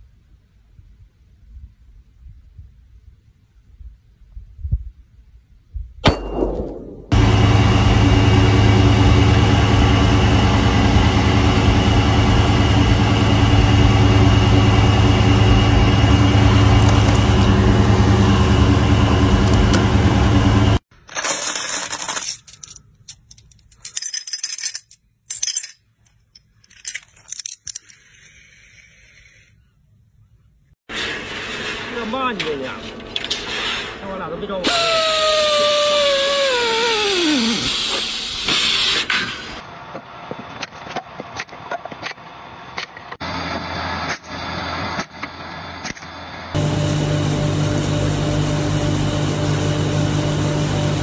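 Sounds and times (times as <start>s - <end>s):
vehicle engine idling: 7.1s - 20.8s
steel balls clinking: 21.1s - 28.4s
pneumatic tool air-motor whine: 34.6s - 39.6s
air hissing: 34.7s - 39.6s
burst of air: 36.2s - 39.6s.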